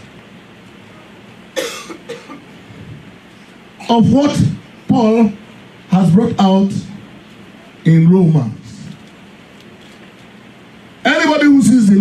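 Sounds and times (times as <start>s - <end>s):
faint room hiss: 0.0s - 12.0s
man coughing: 1.6s - 2.5s.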